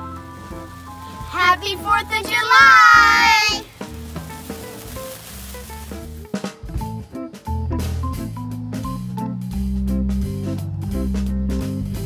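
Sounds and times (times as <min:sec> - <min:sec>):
sparkler fizzing and crackling: 0:00.0 - 0:06.7
quiet background music: 0:00.0 - 0:09.4
children shouting a greeting: 0:01.2 - 0:03.7.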